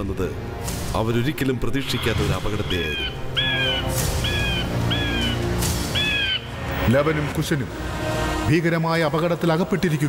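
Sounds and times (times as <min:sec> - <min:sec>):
dramatic background music: 0:00.0 - 0:10.0
crows cawing: 0:02.9 - 0:06.6.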